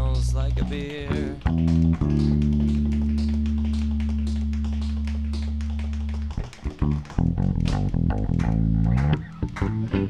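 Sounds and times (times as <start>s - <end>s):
plucked guitar: 0.0s - 10.0s
light ticking taps: 0.1s - 10.0s.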